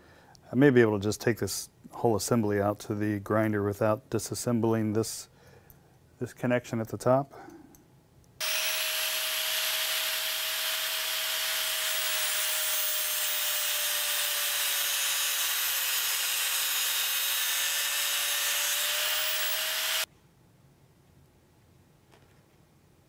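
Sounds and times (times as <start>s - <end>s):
angle grinder grinding metal: 8.4s - 20.1s.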